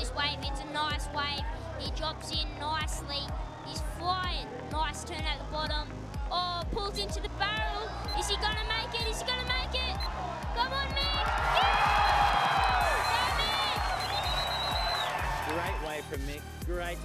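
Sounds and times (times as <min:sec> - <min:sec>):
background music with low beat: 0:00.0 - 0:17.0
high-pitched voices cheering: 0:07.5 - 0:16.1.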